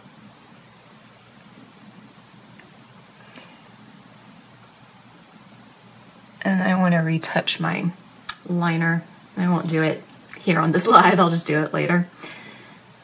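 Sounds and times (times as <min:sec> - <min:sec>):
room tone hiss: 0:00.0 - 0:13.0.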